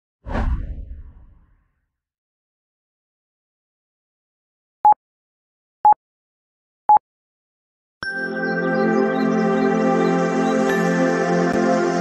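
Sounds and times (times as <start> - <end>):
whoosh with deep boom: 0.3 - 1.6.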